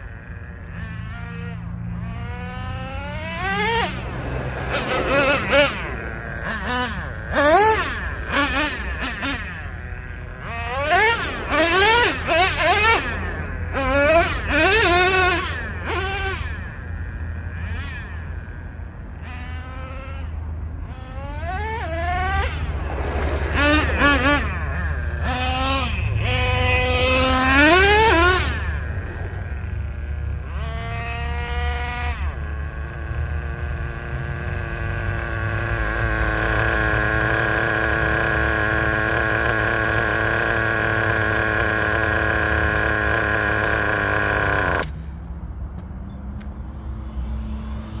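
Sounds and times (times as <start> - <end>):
rc truck engine revving: 0.0 - 45.1, 46.4 - 48.0.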